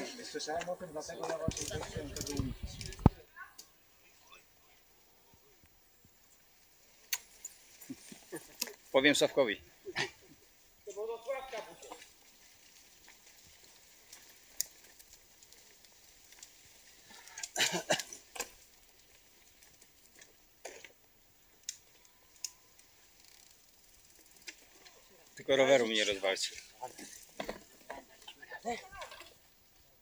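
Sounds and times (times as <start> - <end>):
bicycle tyres rustling on dirt: 0.0 - 30.0
bicycle clicks and rattles: 1.2 - 3.7, 6.9 - 8.9, 11.7 - 29.6.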